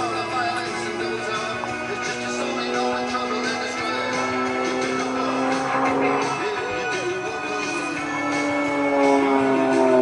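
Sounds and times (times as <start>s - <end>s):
propeller plane engine droning: 0.0s - 10.0s.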